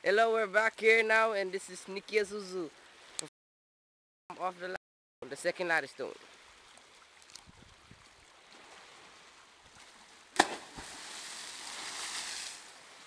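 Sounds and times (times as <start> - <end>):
body splashing into sea: 10.3 - 12.8.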